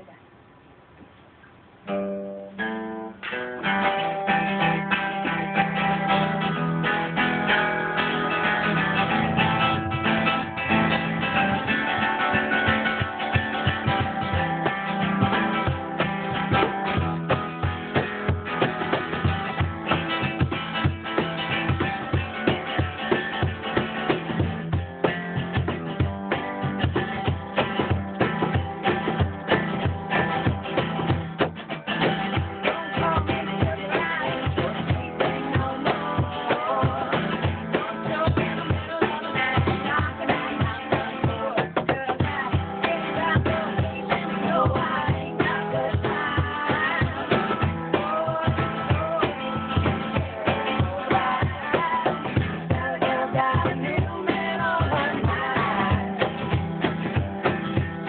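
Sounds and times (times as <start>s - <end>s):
archtop guitar playing: 1.8s - 58.0s
cajon beating a rhythm: 1.9s - 58.0s.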